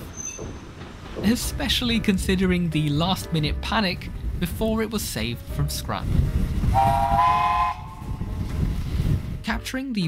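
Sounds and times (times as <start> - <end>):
train rumbling: 0.0 - 9.5.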